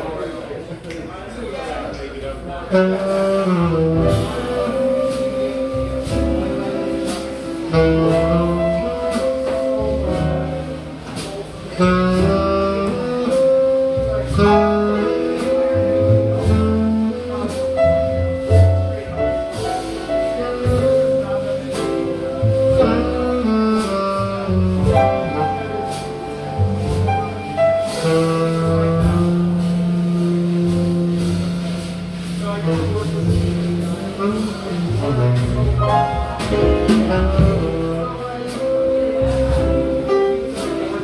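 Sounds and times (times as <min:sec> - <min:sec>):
jazz quartet playing ballad: 0:00.0 - 0:41.0
saxophone melody: 0:02.7 - 0:41.0.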